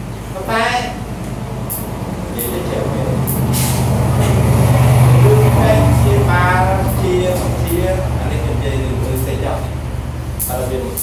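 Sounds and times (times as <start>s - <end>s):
low engine rumble: 0.0s - 11.0s
brief hisses: 3.5s - 4.0s.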